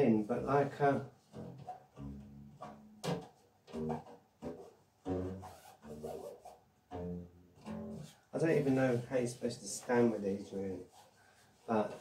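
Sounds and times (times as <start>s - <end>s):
plucked bass notes: 0.4s - 6.1s, 6.9s - 8.2s.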